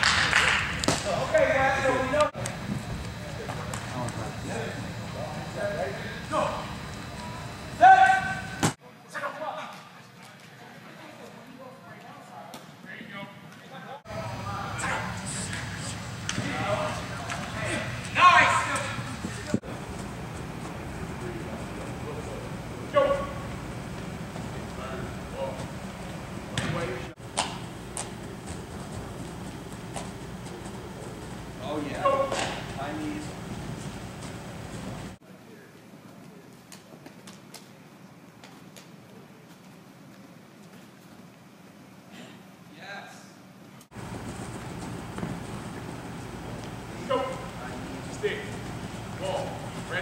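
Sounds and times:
indoor hall background noise: 0.0s - 50.0s
footsteps on artificial turf: 43.9s - 50.0s.

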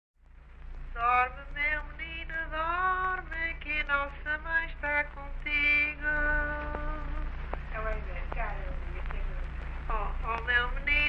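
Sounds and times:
low recording hum: 0.2s - 11.0s
woman singing a lullaby: 1.0s - 11.0s.

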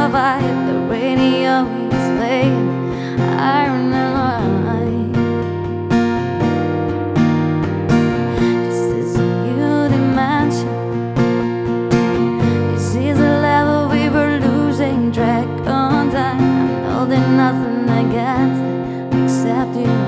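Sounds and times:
woman singing: 0.0s - 6.8s, 7.9s - 20.0s
acoustic guitar strumming: 0.0s - 20.0s.

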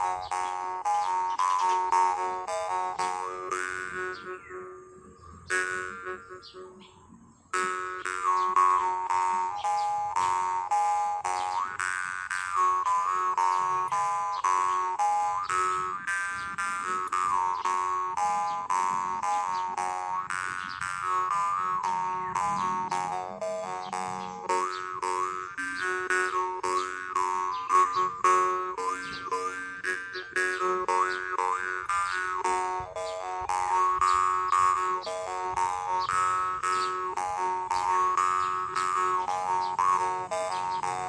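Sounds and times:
jaw harp buzzing drone: 0.0s - 41.0s.

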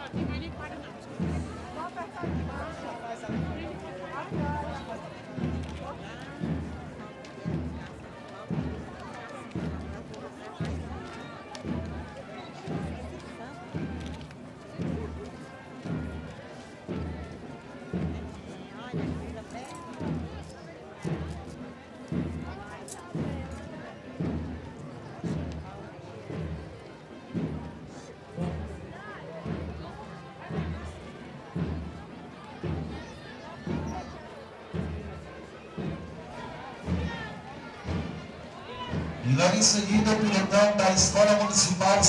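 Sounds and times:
crowd chatter: 0.0s - 42.0s
parade drum beating a march: 0.0s - 42.0s.

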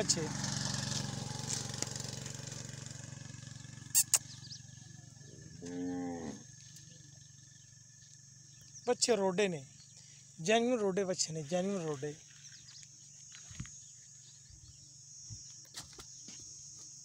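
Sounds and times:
cow mooing: 5.5s - 6.5s.

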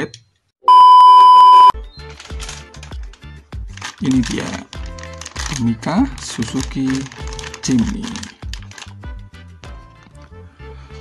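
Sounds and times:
loud steady high beep: 0.7s - 1.8s
background music with low beat: 1.8s - 10.4s.

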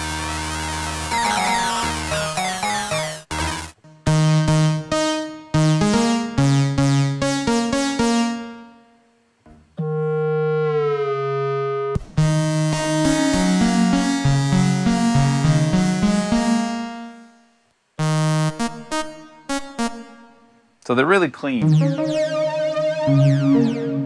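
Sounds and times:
synthesizer lead notes: 0.0s - 8.9s, 9.8s - 20.6s, 21.5s - 24.0s.

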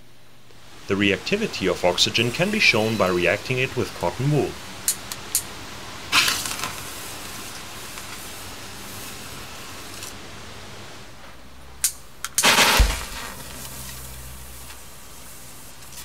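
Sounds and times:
faint steady burning hiss: 0.0s - 16.0s
loud whoosh with thump: 12.4s - 13.6s.

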